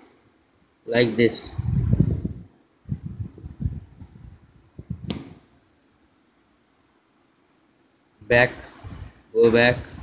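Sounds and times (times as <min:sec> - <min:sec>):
sharp click: 0:05.0 - 0:05.4.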